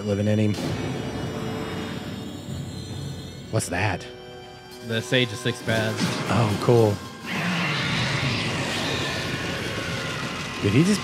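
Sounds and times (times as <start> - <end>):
rushing energy sound effect: 6.1 - 11.0.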